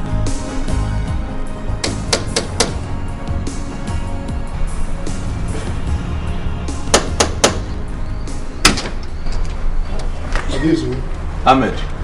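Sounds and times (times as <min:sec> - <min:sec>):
background film music: 0:00.0 - 0:10.2
metal door knocker striking door: 0:01.8 - 0:02.8, 0:06.9 - 0:07.8, 0:08.6 - 0:09.0.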